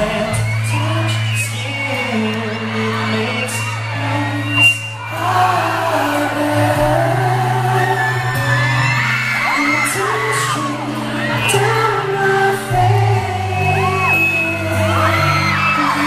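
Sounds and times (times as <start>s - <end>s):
fans screaming: 0.0s - 16.0s
held bass notes: 0.0s - 16.0s
man singing pop ballad: 0.0s - 16.0s.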